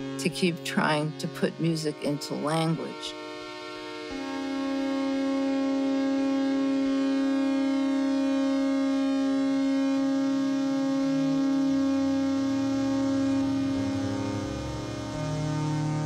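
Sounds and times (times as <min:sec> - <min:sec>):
low bass notes: 0:00.0 - 0:16.0
synthesizer drone: 0:00.0 - 0:16.0.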